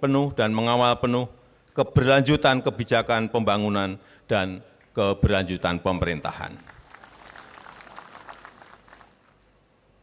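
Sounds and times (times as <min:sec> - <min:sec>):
audience clapping: 0:06.5 - 0:09.4.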